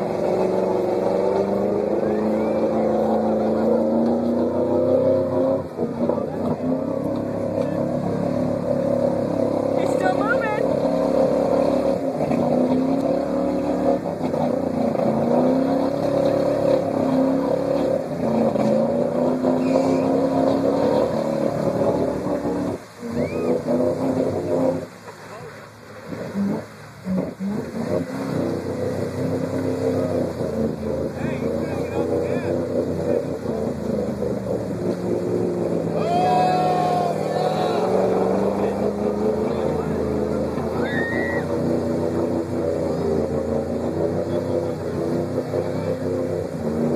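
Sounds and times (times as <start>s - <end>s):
engine revving in mud: 0.0s - 46.9s.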